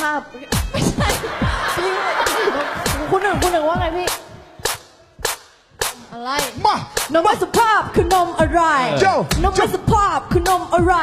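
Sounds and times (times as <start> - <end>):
hip-hop drum beat: 0.0 - 11.0.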